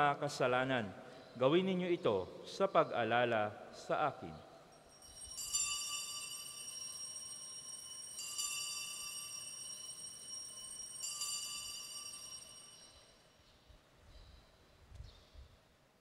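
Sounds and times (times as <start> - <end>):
altar bell ringing: 4.7 - 13.3.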